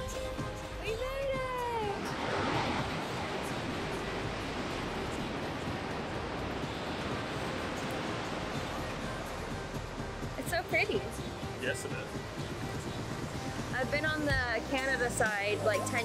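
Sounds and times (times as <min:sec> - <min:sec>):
waterfall rushing: 0:00.0 - 0:16.0.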